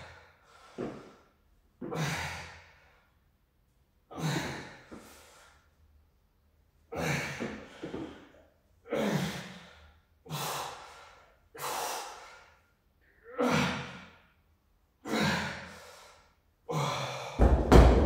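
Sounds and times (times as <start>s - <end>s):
dumbbells thudding on rubber floor: 17.4s - 18.0s.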